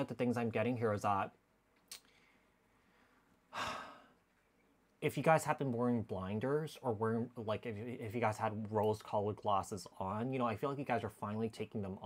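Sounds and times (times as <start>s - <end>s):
man breathing out: 2.1s - 4.2s.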